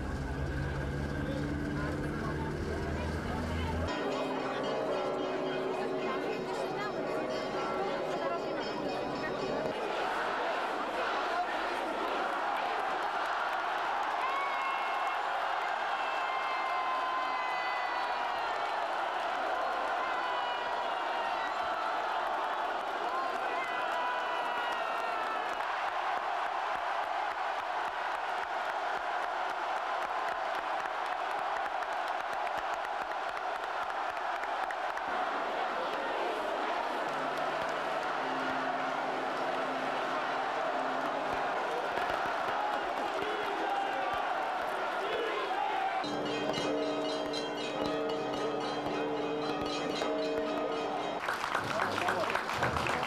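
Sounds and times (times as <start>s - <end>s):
crowd cheering and shouting: 0.0s - 53.0s
church bells ringing: 2.4s - 10.7s, 46.0s - 52.4s
clapping: 11.4s - 53.0s.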